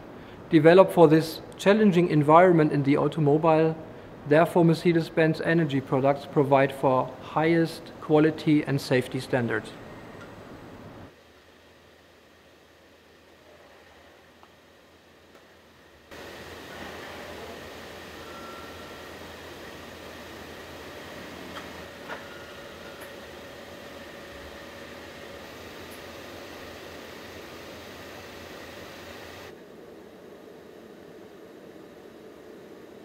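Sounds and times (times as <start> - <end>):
assembly line machinery hum: 0.0 - 33.0
faint steady tones: 16.1 - 33.0
steady hiss: 16.1 - 33.0.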